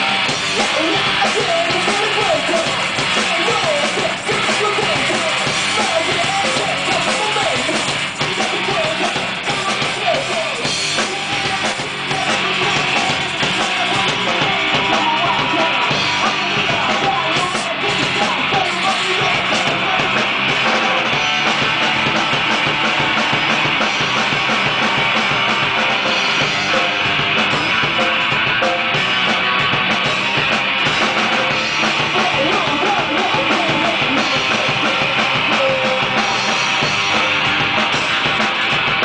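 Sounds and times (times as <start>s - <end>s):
drum kit: 0.0s - 39.0s
electric guitar: 0.0s - 39.0s
rock band playing: 0.0s - 39.0s.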